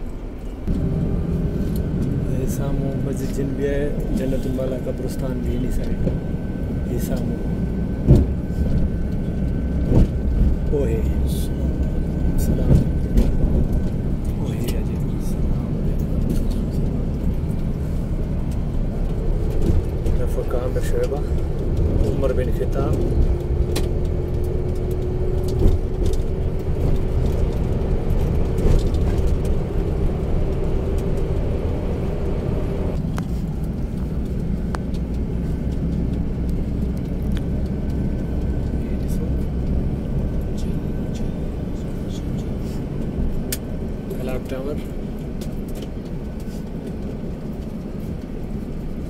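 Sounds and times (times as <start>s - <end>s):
bus engine and road rumble: 0.0s - 49.0s
steady hum: 0.0s - 49.0s.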